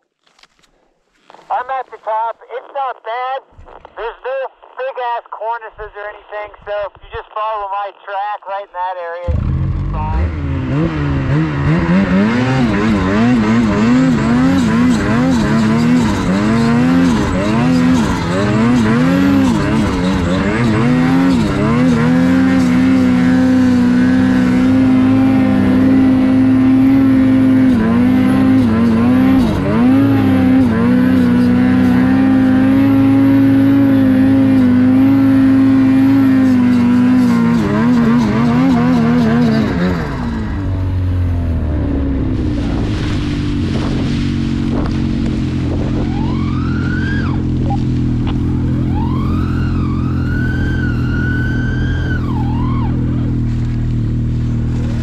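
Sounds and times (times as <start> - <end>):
snowmobile engine revving: 9.2 - 55.0.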